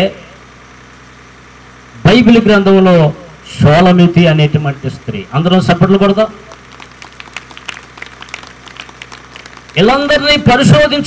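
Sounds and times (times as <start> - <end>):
speech: 2.0 - 6.4, 9.8 - 11.0
audience applauding: 6.5 - 10.4.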